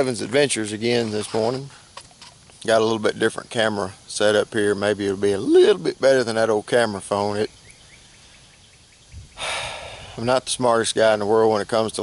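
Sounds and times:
faint outdoor background: 0.0s - 12.0s
man breathing in through nose: 9.3s - 10.2s.

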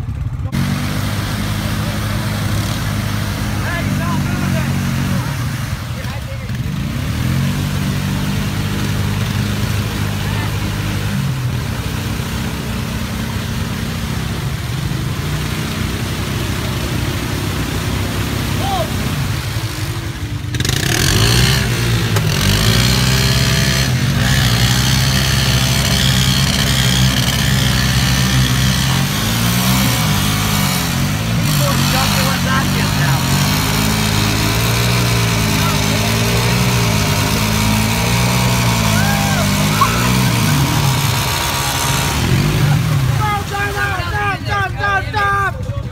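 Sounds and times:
atv engines revving: 0.0s - 45.9s
tyres spinning in mud: 0.5s - 45.9s.

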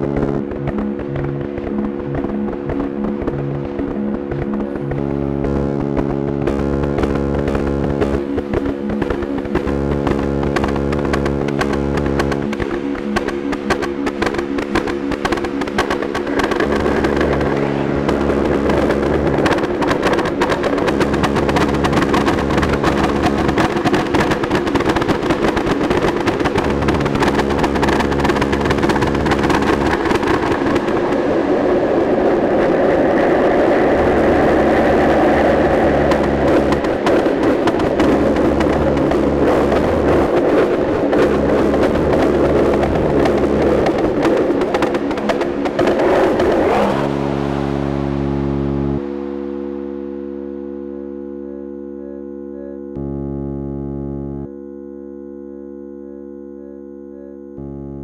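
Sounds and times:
dense fast clicking texture: 0.0s - 31.6s, 33.7s - 47.4s
deep synthesizer bass: 0.0s - 58.0s
held synthesizer tones: 0.0s - 58.0s
mid-range synthesizer swell: 0.0s - 58.0s.

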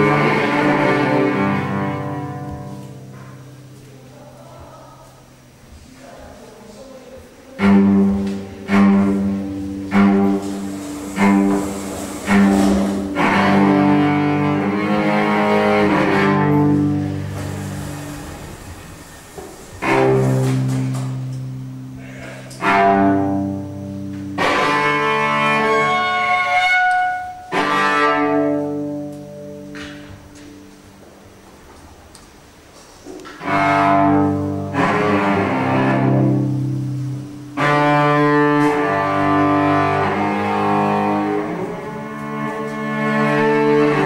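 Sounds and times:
bowed cello notes: 0.0s - 31.7s, 32.5s - 44.0s.

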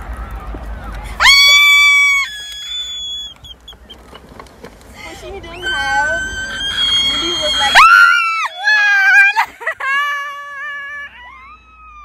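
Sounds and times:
woman squealing with delight: 1.2s - 3.4s, 5.5s - 12.0s.

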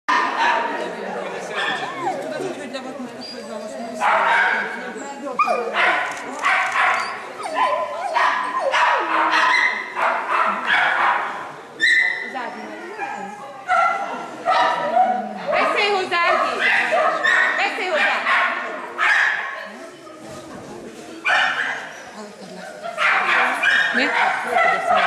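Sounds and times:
dog barking excitedly: 4.0s - 4.7s, 5.4s - 11.4s, 13.7s - 19.5s, 21.3s - 21.9s, 22.9s - 25.0s.

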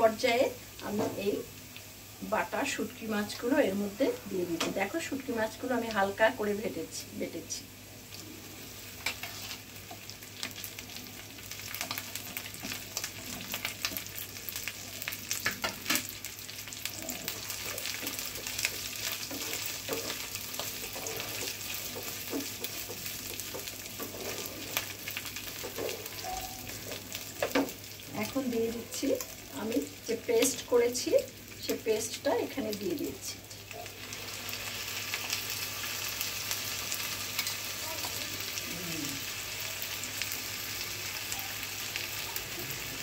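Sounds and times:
fish sizzling in oil: 0.0s - 43.0s
wooden spatula tapping and scraping pan: 17.9s - 24.4s.

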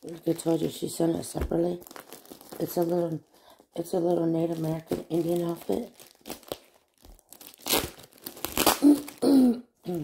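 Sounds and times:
package wrapping crinkling: 0.0s - 9.2s
sharp ripping of packaging: 1.5s - 3.2s, 4.4s - 9.3s.

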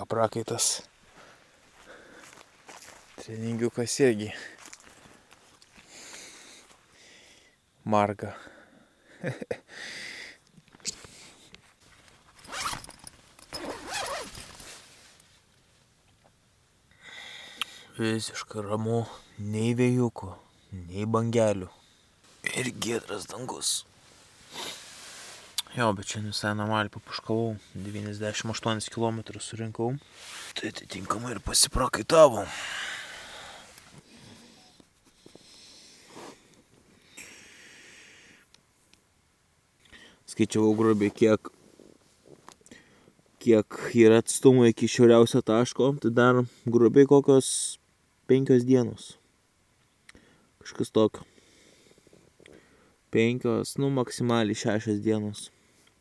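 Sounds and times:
man breathing: 1.1s - 2.5s, 4.3s - 7.6s, 8.4s - 10.4s, 16.9s - 18.0s, 32.4s - 38.5s, 39.8s - 40.2s, 42.6s - 43.2s, 50.1s - 50.5s, 51.2s - 53.0s
tent zipper pulled open: 12.3s - 15.2s, 24.5s - 25.6s.

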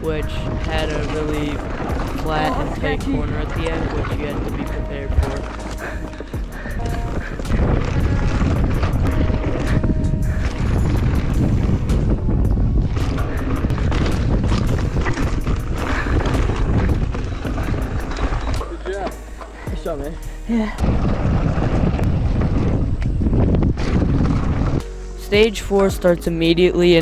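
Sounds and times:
background music: 0.0s - 21.0s, 24.8s - 27.0s
bike frame and chain rattling: 0.0s - 25.4s
wind rumbling on microphone: 0.0s - 26.0s.

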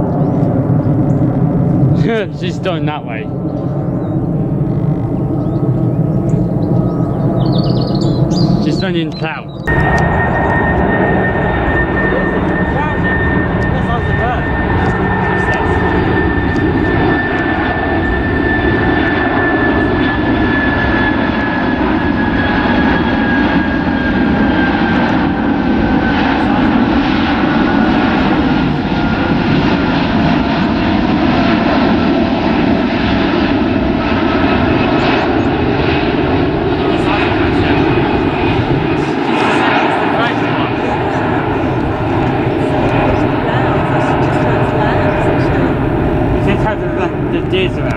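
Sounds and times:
high jet engine whine: 0.0s - 47.9s
jet engines roaring: 0.0s - 47.9s.

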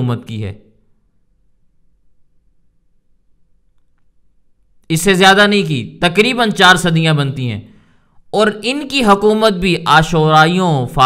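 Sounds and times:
man speaking: 0.0s - 0.8s, 4.8s - 11.0s.

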